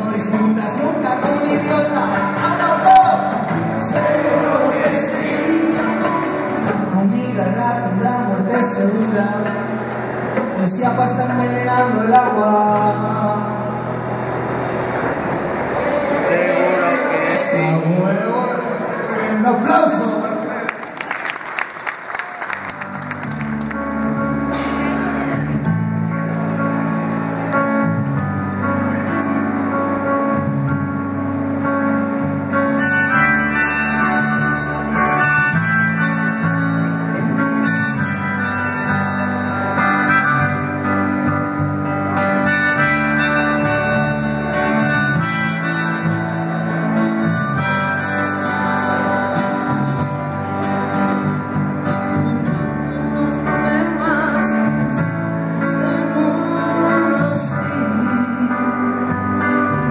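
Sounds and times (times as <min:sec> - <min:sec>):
live guitar music: 0:00.0 - 0:59.9.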